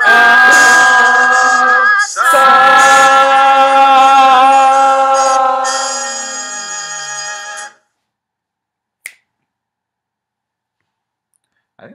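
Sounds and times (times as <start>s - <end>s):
sharp finger snap: 9.0s - 9.5s.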